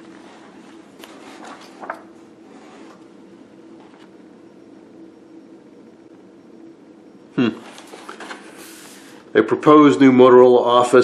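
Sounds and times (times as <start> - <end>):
low hum: 0.0 - 9.3
steady hiss: 8.4 - 9.4.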